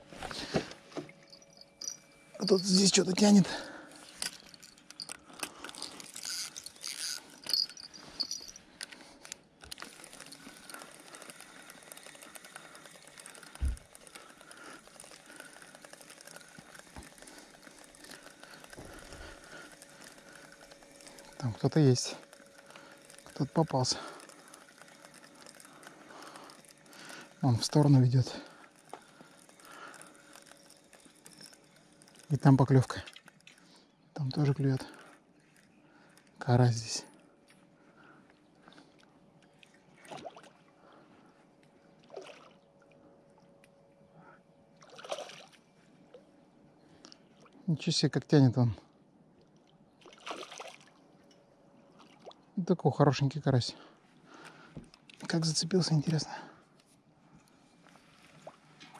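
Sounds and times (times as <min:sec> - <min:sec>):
handling clicks and rustles: 0:00.0 - 0:35.6
fishing reel whirring: 0:00.7 - 0:37.2.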